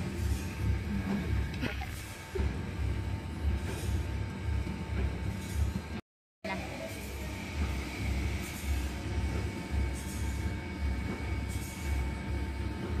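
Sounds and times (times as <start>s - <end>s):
machinery low rumble: 0.0s - 13.0s.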